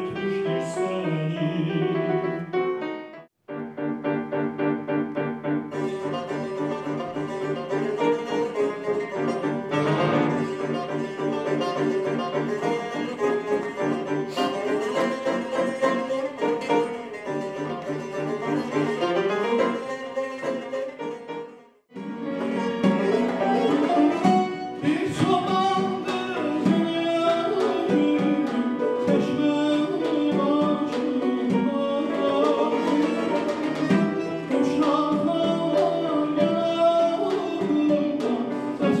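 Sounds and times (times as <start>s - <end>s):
folk instrumental ensemble with piano: 0.0s - 39.0s.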